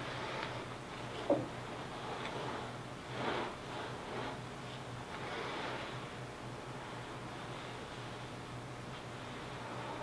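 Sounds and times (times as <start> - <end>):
faint rustling and soft swishes: 0.0 - 10.0
low steady hum: 0.0 - 10.0.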